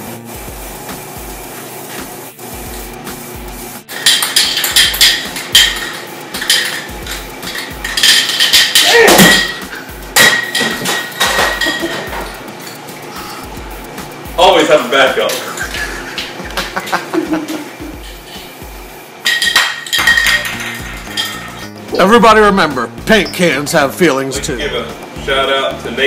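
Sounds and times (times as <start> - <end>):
spray paint hissing: 0.0 - 8.8, 15.6 - 19.5
background music with bass beat: 0.0 - 19.0, 20.0 - 26.0
spray can rattling when shaken: 0.1 - 10.0, 18.0 - 21.7.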